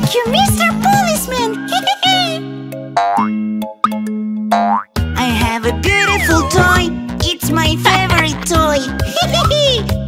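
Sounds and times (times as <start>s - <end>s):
cartoon boing effects: 3.0s - 5.0s, 6.1s - 6.8s.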